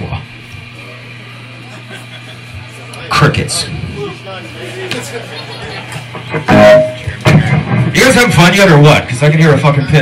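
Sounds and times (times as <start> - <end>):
amplifier hum: 0.0 - 10.0
electric guitar chord: 6.5 - 7.1.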